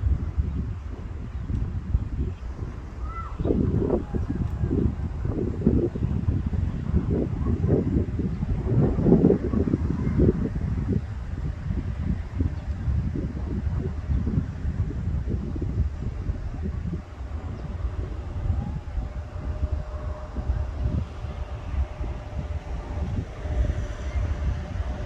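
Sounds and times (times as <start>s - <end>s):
wind buffeting microphone: 0.0s - 25.0s.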